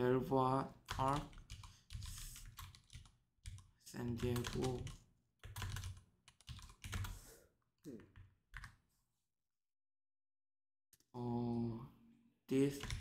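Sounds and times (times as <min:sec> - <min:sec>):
person speaking: 0:00.0 - 0:02.6, 0:03.8 - 0:05.0, 0:11.2 - 0:13.0
typing on computer keyboard: 0:00.9 - 0:07.2, 0:12.8 - 0:13.0.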